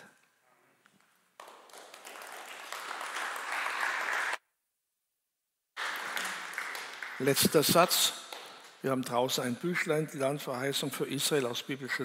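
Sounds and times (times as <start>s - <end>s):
audience applauding: 1.4s - 4.4s, 5.8s - 8.8s.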